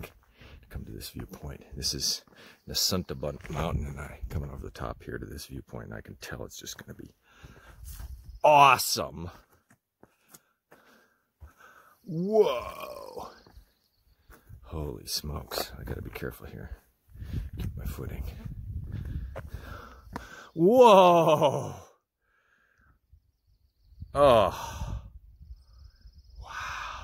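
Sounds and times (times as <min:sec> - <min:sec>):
footsteps on stone: 0:03.2 - 0:04.5, 0:06.7 - 0:08.4, 0:09.3 - 0:11.8, 0:13.3 - 0:14.6, 0:17.4 - 0:20.4.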